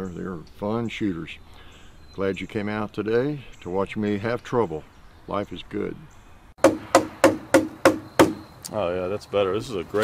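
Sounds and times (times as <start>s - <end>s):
hammering on wooden post: 6.6s - 8.5s.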